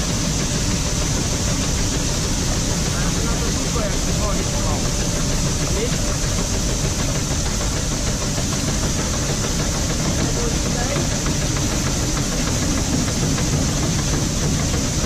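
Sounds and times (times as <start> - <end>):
tractor engine idling: 0.0 - 15.0.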